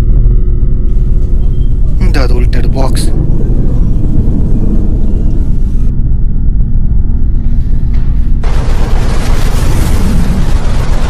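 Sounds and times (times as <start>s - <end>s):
deep low rumble: 0.0s - 11.0s.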